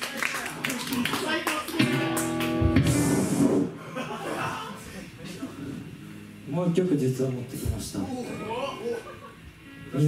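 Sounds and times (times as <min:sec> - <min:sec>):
hand claps: 0:00.0 - 0:02.9
electric guitar chord: 0:01.8 - 0:03.7
drum hit with cymbal wash: 0:02.6 - 0:03.8.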